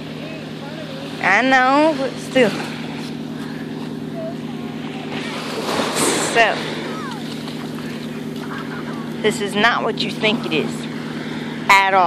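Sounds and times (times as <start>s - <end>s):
distant engine drone: 0.0s - 12.0s
small waves washing on sand: 4.8s - 9.3s.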